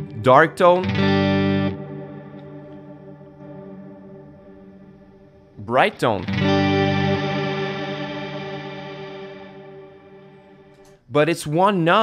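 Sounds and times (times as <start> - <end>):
electric guitar chord with reverb: 0.0 - 10.8.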